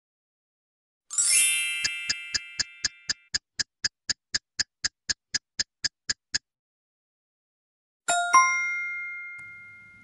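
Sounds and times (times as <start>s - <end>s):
bell-like chime: 8.1s - 10.0s.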